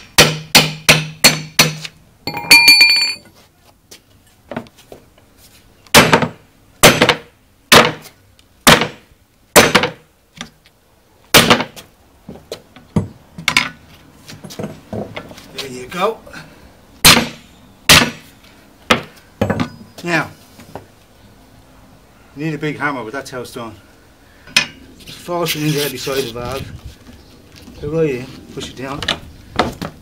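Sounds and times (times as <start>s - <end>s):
ringing metallic clang: 2.3s - 3.3s.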